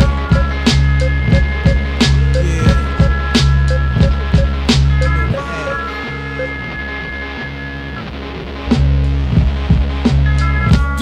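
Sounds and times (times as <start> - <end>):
drum hits: 0.0 - 5.0
held high synth tones: 0.0 - 8.0
deep bass line: 0.0 - 11.0.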